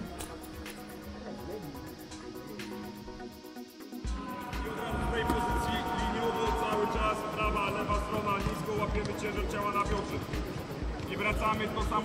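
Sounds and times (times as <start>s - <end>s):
music with steady bass beat: 0.0s - 12.0s.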